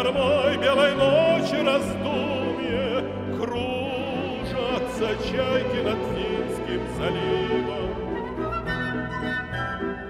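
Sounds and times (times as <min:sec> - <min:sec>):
orchestra playing a waltz: 0:00.0 - 0:10.0.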